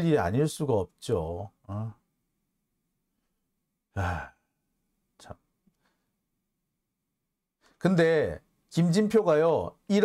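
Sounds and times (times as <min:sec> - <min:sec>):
man sighing: 0:03.9 - 0:04.5.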